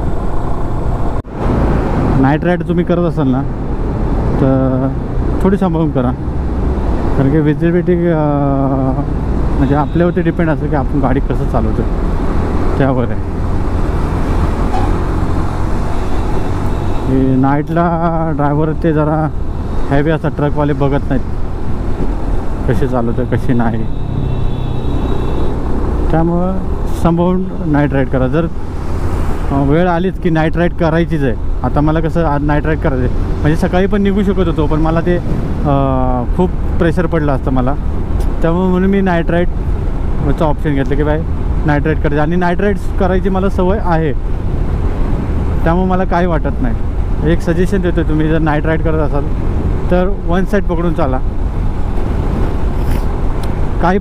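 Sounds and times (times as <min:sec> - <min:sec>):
highway traffic: 0:00.0 - 0:54.0
road and wind rumble: 0:00.0 - 0:54.0.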